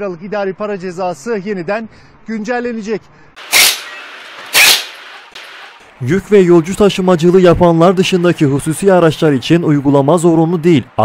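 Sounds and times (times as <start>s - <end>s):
pneumatic impact wrench bursts: 3.4s - 5.8s.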